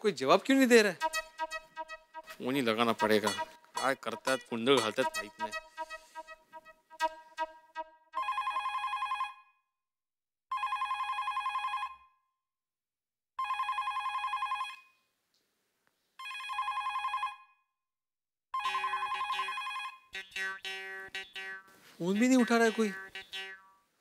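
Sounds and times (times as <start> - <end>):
telephone ringing electronic trill: 18.6 - 21.6.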